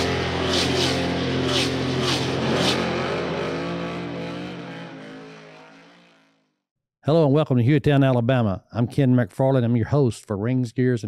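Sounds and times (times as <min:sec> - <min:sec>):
rock intro music: 0:00.0 - 0:05.9
race car engine revving: 0:00.0 - 0:06.4.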